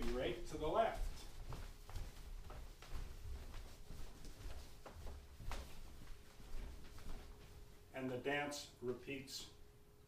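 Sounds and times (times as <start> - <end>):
socked feet skipping on hardwood: 0.0 - 7.5.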